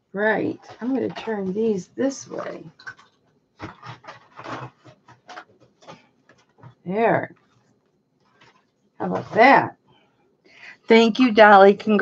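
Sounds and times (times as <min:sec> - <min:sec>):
items rustling and knocking on desk: 0:00.4 - 0:10.0.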